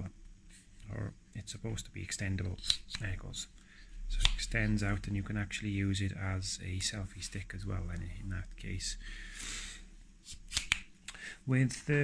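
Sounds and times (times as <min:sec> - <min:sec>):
sharp clicks of pole sections: 0:10.3 - 0:11.2.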